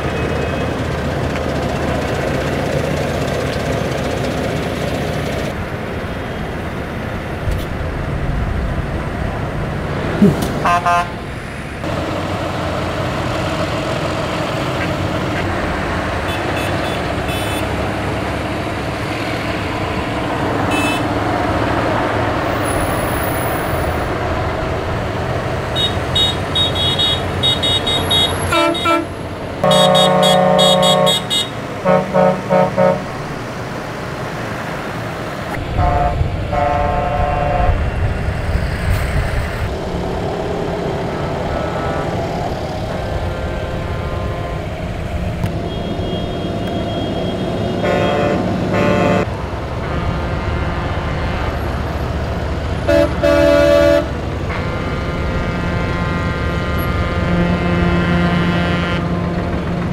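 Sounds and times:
horns honking: 0.0 - 4.2, 10.2 - 11.2, 14.5 - 21.8, 25.6 - 33.5, 35.5 - 38.0, 41.1 - 59.9
tractor and lorry engines running: 0.0 - 59.9.

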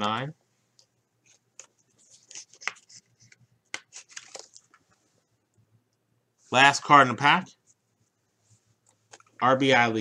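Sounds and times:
plastic card sleeve crinkling: 1.3 - 4.9.

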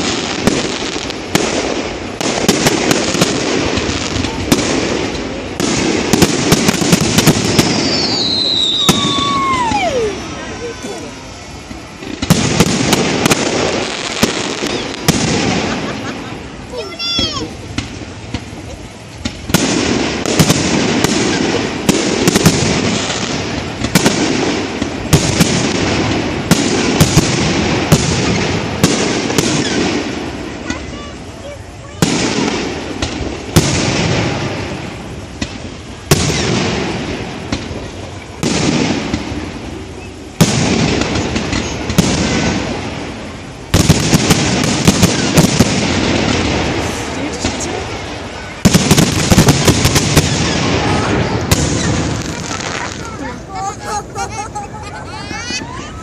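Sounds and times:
firework shells bursting: 0.0 - 54.2.

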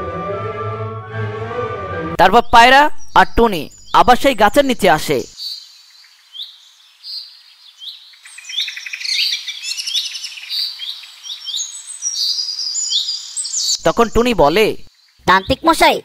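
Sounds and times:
birds chirping: 2.2 - 16.0.

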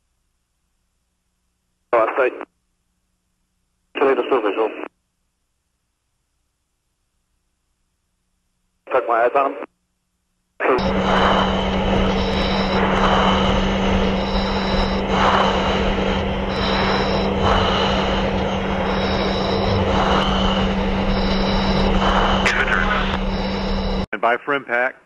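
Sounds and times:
aircraft engine and cabin noise: 10.6 - 24.1
pulsing high tone: 10.6 - 24.1
brief rising whistle: 10.8 - 24.1.

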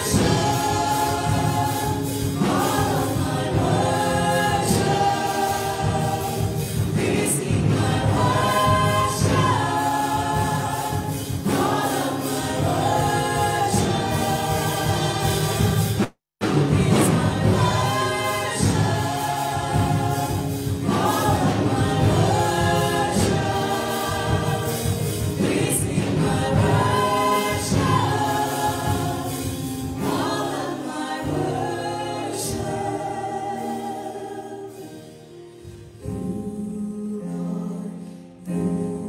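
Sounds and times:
women singing in harmony: 0.0 - 35.4, 36.0 - 39.0
keyboard accompaniment: 0.0 - 39.0.

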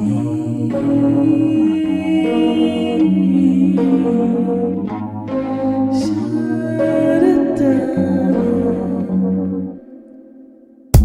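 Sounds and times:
held music chords: 0.0 - 11.0.

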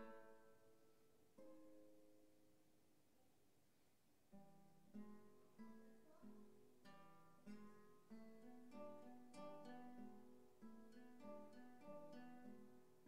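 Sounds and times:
classical guitar duet: 0.0 - 2.6, 4.3 - 13.0.

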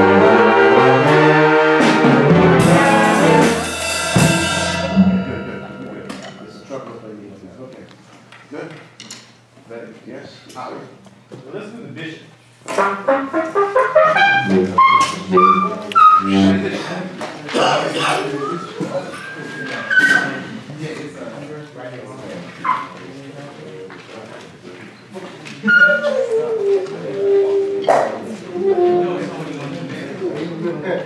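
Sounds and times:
trumpet playing jazz phrases: 0.0 - 5.8, 12.7 - 16.9
person talking: 14.4 - 17.2.

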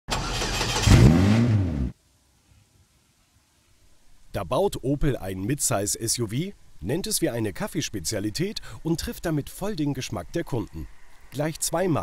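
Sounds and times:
car engine revving: 0.1 - 2.0.

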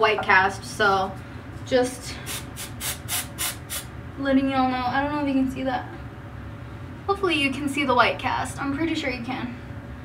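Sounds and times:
aerosol spray hissing puffs: 2.3 - 3.9.

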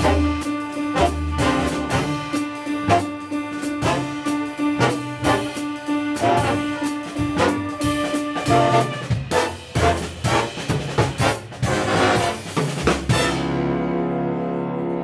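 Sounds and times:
drum kit accents: 0.0 - 14.1
jazz big band playing: 0.0 - 15.0.

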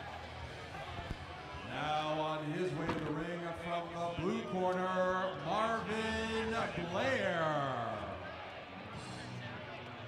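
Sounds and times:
man announcing over loudspeakers: 1.7 - 8.3.

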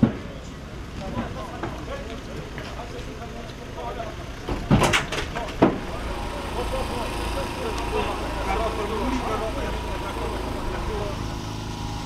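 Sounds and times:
people talking: 0.0 - 11.4.

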